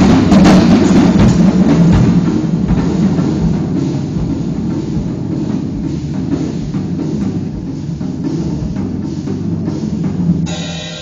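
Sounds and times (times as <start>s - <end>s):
live fusion band playing: 10.4s - 11.0s.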